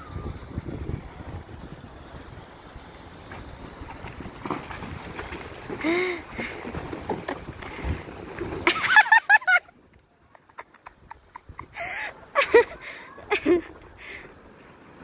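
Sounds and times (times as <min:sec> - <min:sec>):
wind buffeting microphone: 0:00.0 - 0:08.9.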